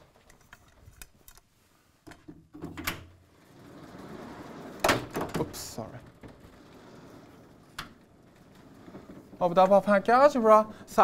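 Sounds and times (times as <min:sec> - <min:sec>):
board sliding in metal frame: 0:03.3 - 0:10.0.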